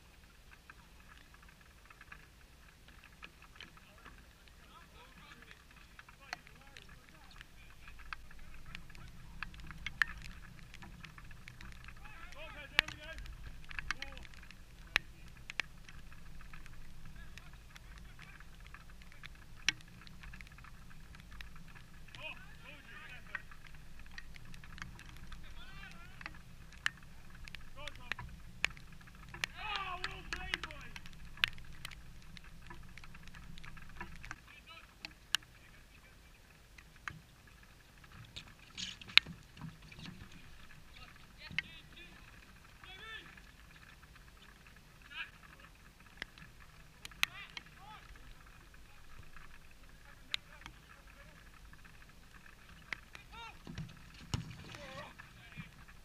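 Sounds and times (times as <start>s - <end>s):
players shouting: 29.5s - 30.8s.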